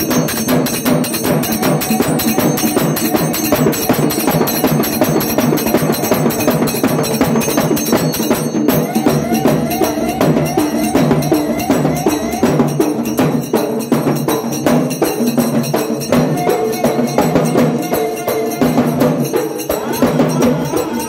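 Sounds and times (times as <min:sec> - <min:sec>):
jingling metal percussion: 0:00.0 - 0:21.0
stick-beaten drum: 0:00.0 - 0:21.0
wavering melody line: 0:07.8 - 0:13.9.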